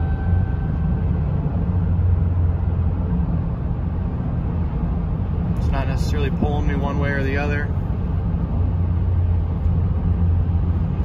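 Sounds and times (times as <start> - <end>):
car cabin road drone: 0.0 - 11.0.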